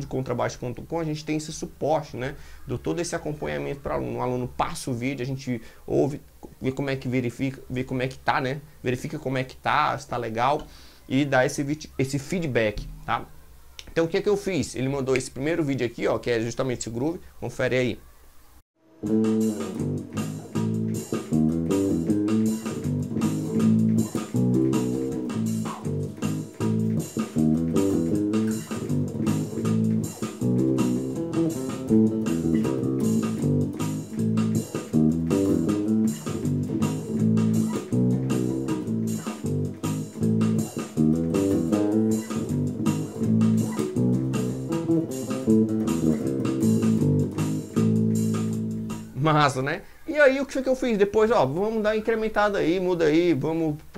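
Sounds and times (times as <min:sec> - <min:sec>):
steady backing beat: 0:12.6 - 0:14.0, 0:19.0 - 0:49.2
fingerpicked electric bass: 0:19.0 - 0:49.1.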